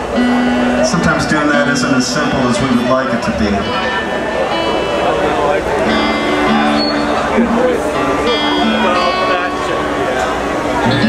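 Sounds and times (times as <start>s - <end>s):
acoustic string band playing: 0.0s - 11.0s
strummed acoustic guitar: 0.0s - 11.0s.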